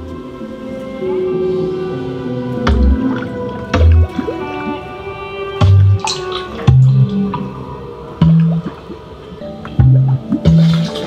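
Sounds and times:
ambient music: 0.0s - 11.0s
water-drop sound effects: 2.7s - 4.7s, 5.6s - 7.4s, 8.2s - 9.0s, 9.7s - 11.0s.

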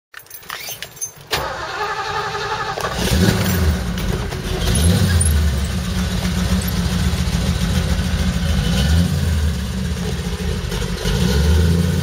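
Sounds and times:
keys jingling: 0.1s - 1.3s
car engine starting and running: 0.6s - 12.0s.

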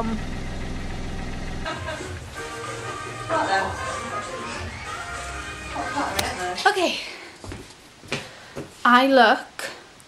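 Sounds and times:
car engine hum inside cabin: 0.0s - 1.7s.

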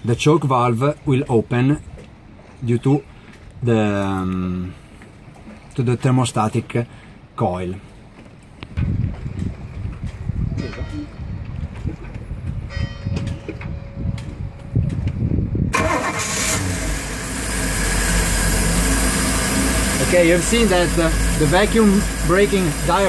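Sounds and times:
starter cranking engine: 15.7s - 23.0s
engine running at fast idle: 15.8s - 23.0s.

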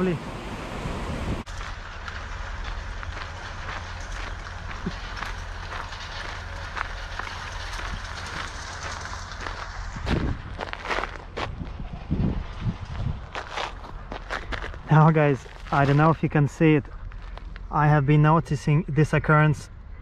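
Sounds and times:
noisy outdoor wash: 0.0s - 20.0s
steady low rumble: 0.0s - 20.0s
footsteps on tarmac: 1.5s - 11.8s, 12.5s - 17.7s.

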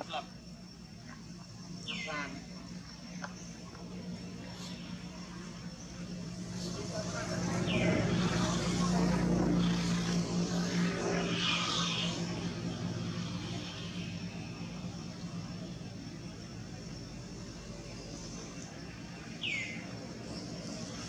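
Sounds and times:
motor engine passing by: 1.0s - 21.0s.

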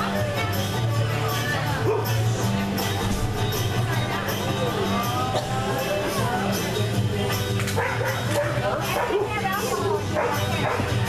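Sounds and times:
background music: 0.0s - 11.0s
people talking: 0.0s - 11.0s
dog barking: 1.8s - 2.2s, 7.8s - 11.0s.

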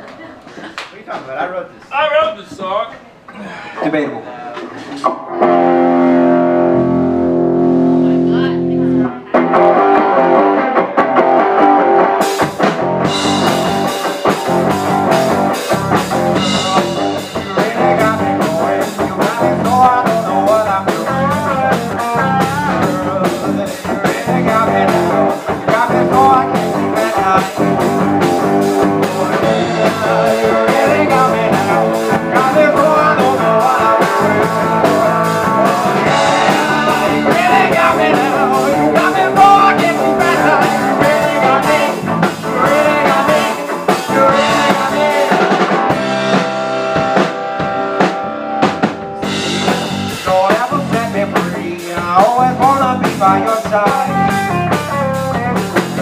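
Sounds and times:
blues rock band playing: 5.0s - 56.0s.

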